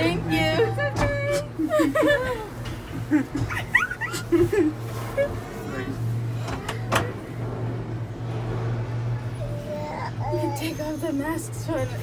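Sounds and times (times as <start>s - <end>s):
low cabin hum: 0.0s - 12.0s
child whining: 9.4s - 11.0s.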